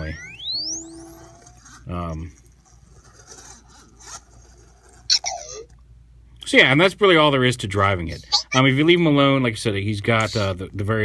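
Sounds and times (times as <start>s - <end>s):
electronic droid chirp: 0.0s - 1.8s.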